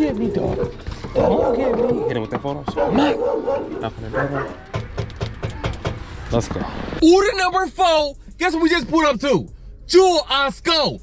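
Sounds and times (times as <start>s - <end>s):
dog barking behind window: 0.2s - 4.6s.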